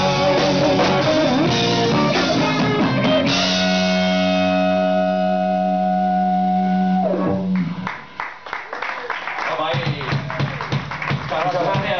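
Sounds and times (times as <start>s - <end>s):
distorted electric guitar chord ringing: 0.0s - 8.2s.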